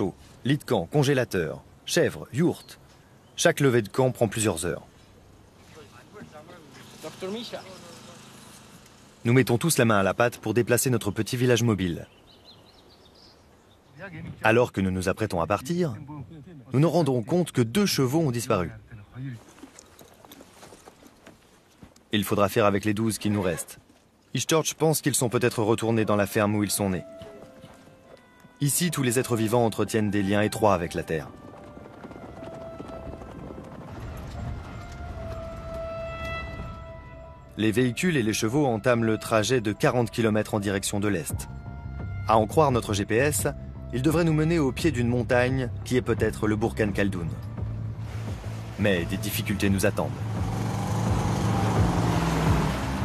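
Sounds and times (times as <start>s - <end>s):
horses galloping on grass: 19.3s - 22.2s, 26.7s - 36.6s.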